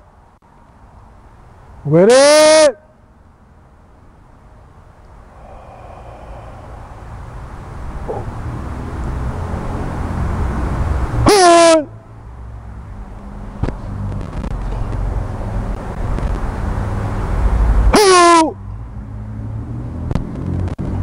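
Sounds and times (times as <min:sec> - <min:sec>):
low traffic rumble: 0:00.0 - 0:21.0
person shouting kiai: 0:01.9 - 0:02.8, 0:11.2 - 0:12.0, 0:17.9 - 0:18.6.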